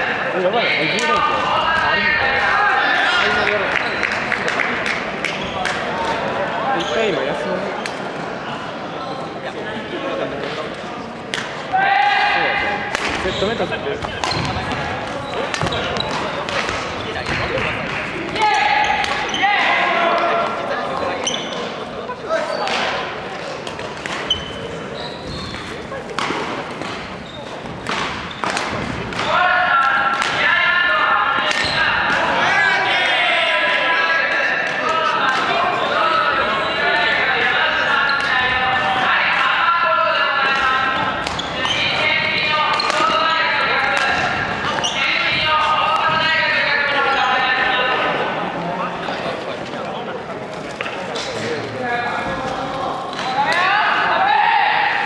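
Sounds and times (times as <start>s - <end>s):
indistinct voices chattering: 0.0s - 55.0s
racket smacking shuttlecock: 23.6s - 29.3s.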